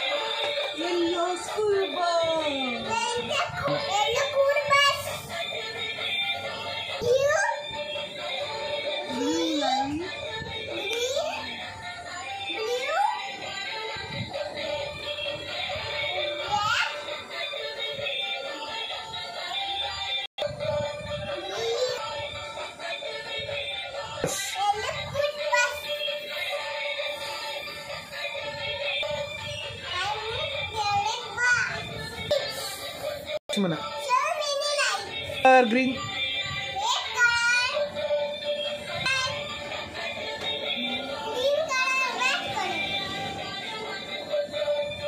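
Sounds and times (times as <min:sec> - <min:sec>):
tinny electronic toy music: 0:00.0 - 0:24.2, 0:24.8 - 0:45.0.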